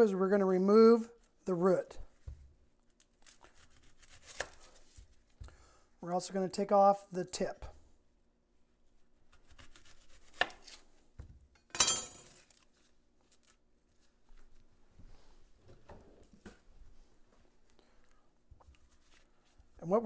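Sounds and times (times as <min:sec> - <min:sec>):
knife cutting on wooden board: 0:09.3 - 0:10.8
onion being handled: 0:18.6 - 0:19.9.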